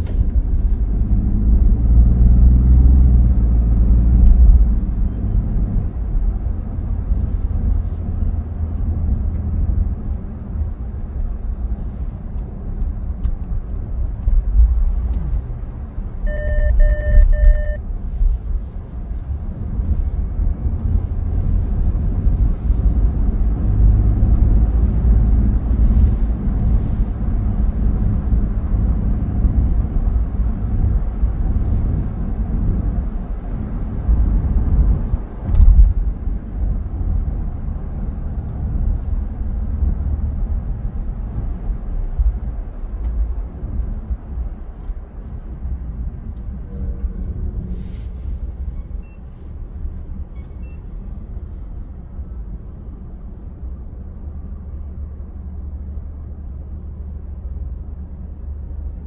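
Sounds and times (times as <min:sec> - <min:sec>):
car engine and tyres rumbling: 0:00.0 - 0:59.0
short beeps: 0:16.3 - 0:17.8.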